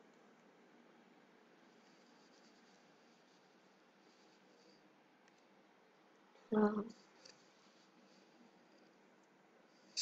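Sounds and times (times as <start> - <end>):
faint room hiss: 0.0 - 10.0
stylus scratching on tablet: 1.6 - 4.9, 6.8 - 9.0.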